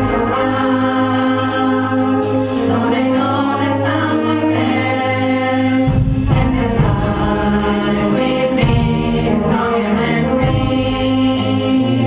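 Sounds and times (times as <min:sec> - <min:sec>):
choir singing: 0:00.0 - 0:12.0
wind band chords: 0:00.0 - 0:12.0.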